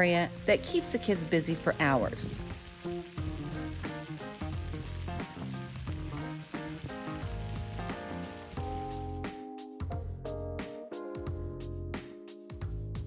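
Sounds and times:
music with plucked notes and bass: 0:00.0 - 0:12.0.

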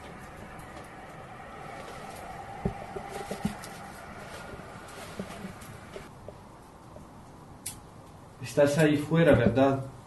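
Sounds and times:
soft low bumps: 0:00.0 - 0:06.4
steady background hiss: 0:00.0 - 0:10.0.

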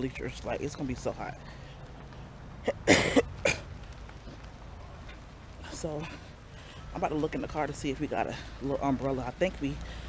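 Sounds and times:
woman coughing: 0:02.7 - 0:03.6.

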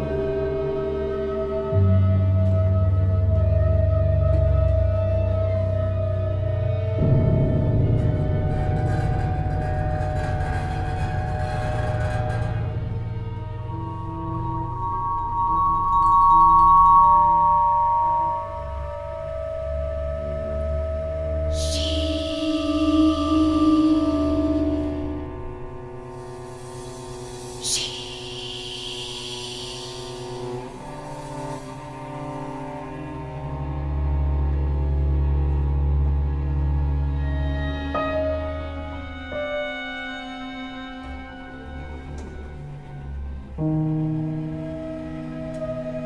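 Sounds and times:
chamber ensemble dark texture: 0:00.0 - 0:46.0
high ringing tone: 0:13.8 - 0:19.4.

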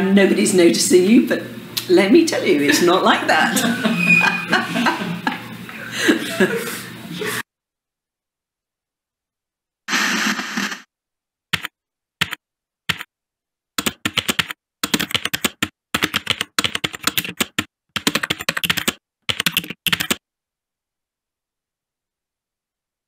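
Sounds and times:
burst of noise: 0:09.9 - 0:10.9
keyboard typing: 0:11.5 - 0:13.1, 0:13.8 - 0:20.2.

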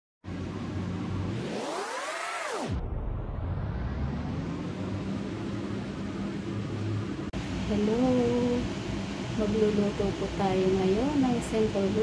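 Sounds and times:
steady low hum and hiss: 0:04.4 - 0:12.0.

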